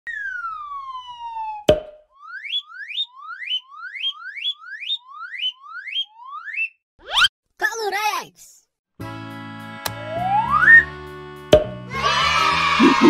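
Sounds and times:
cartoon falling whistle: 0:00.1 - 0:07.3.

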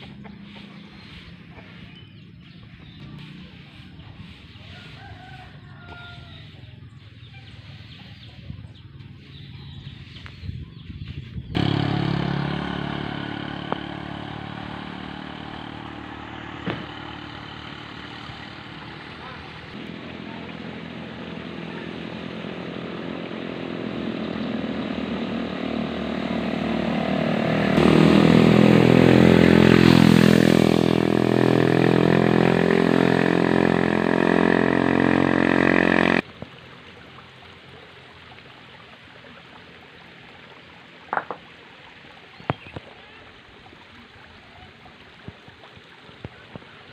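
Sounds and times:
motorcycle engine running: 0:00.0 - 0:04.4, 0:11.4 - 0:36.2.

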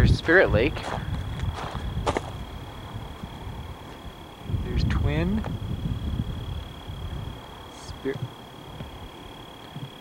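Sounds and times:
faint high whine: 0:00.0 - 0:10.0
wind rumbling on microphone: 0:00.0 - 0:10.0.

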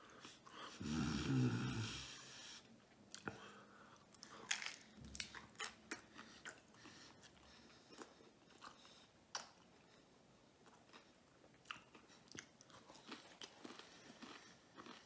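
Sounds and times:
man chewing: 0:00.1 - 0:15.0
man humming: 0:00.8 - 0:02.2
crunchy taco crunching: 0:04.1 - 0:09.7, 0:10.6 - 0:15.0.

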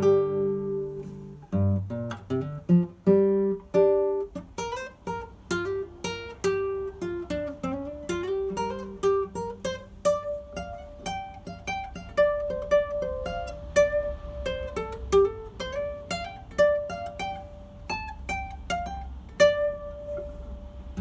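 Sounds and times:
fingerstyle classical guitar: 0:00.0 - 0:21.0.

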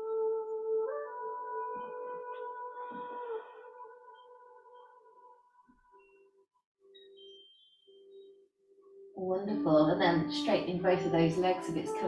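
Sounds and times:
singing bowl ringing: 0:07.1 - 0:08.4.

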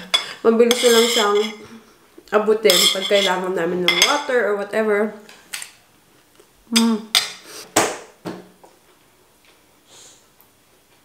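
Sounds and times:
cutlery clinking on plate: 0:00.0 - 0:01.6.

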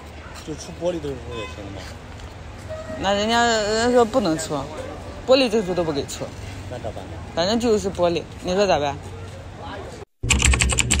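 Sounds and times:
faint outdoor background: 0:00.0 - 0:10.7.

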